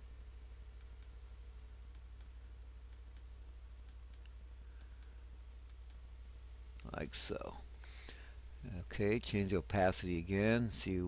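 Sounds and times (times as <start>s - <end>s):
steady low hum: 0.0s - 11.0s
faint computer mouse clicks: 3.9s - 6.0s.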